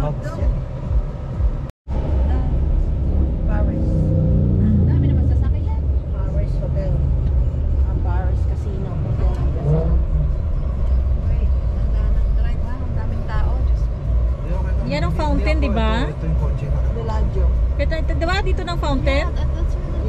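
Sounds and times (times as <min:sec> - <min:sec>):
road noise: 0:00.0 - 0:20.0
vehicle engine rumble: 0:00.0 - 0:20.0.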